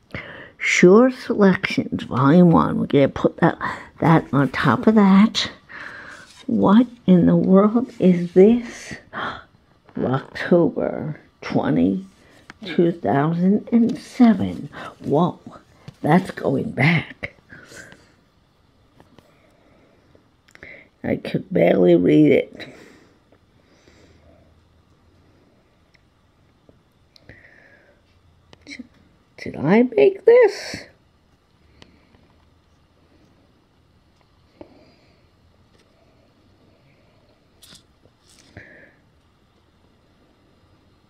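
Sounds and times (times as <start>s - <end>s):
paper rustling: 5.7s - 7.1s.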